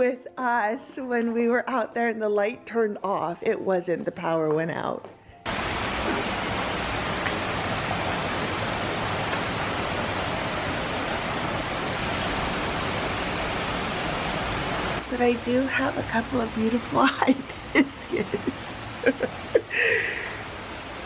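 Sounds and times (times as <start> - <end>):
heavy rain pouring: 5.5 - 21.0.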